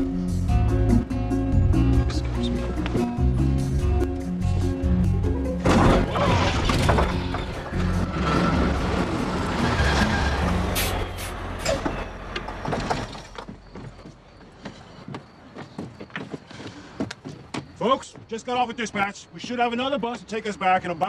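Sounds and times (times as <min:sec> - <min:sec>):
bus engine droning: 0:06.1 - 0:14.7.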